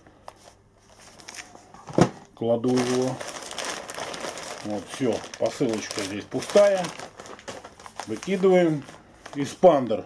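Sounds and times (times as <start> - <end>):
plastic bag and paper crackling: 0.4 - 1.8, 2.5 - 10.0.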